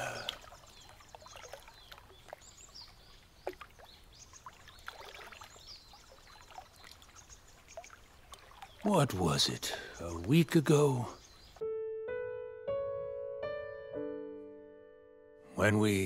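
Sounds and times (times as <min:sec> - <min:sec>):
water lapping: 0:00.0 - 0:11.6.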